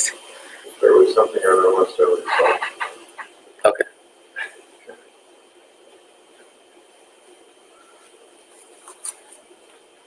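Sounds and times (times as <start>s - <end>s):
faint room hiss: 0.0s - 10.0s
person chuckling: 2.3s - 3.2s.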